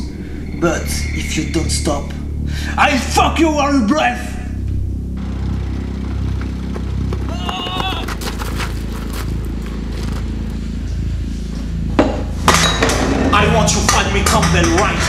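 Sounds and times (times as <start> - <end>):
low drone: 0.0 - 7.4, 8.0 - 15.0.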